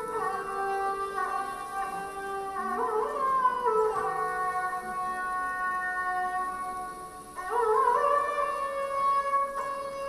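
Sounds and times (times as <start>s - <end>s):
bowed sarangi melody: 0.0s - 10.0s.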